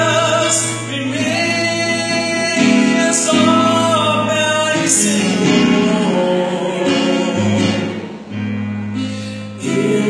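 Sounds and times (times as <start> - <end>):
man singing through loudspeakers: 0.0 - 8.3, 9.2 - 10.0
other voices singing: 0.0 - 8.3, 9.2 - 10.0.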